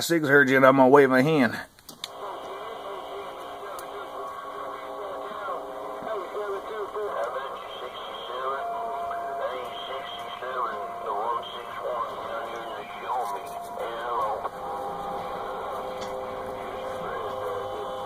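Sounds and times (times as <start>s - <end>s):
garbled radio voices: 2.1s - 18.0s
radio whistles: 2.1s - 18.0s.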